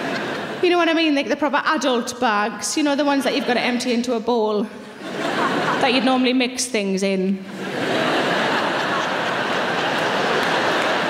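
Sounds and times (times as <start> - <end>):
audience laughing: 0.0 - 0.6, 3.1 - 4.0, 4.9 - 6.3, 7.4 - 11.0
audience clapping: 8.4 - 11.0.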